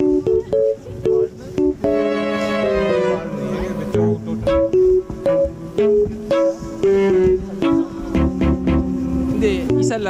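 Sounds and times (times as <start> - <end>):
background music with short notes: 0.0 - 10.0.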